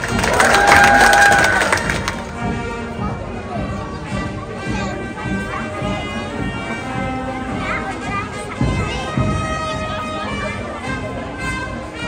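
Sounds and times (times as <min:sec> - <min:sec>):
people clapping: 0:00.0 - 0:02.5.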